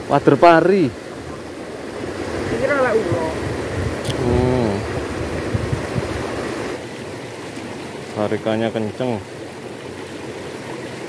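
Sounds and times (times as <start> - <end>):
stream rushing over rocks: 0.0 - 11.0
person's short vocal sounds: 4.1 - 4.9.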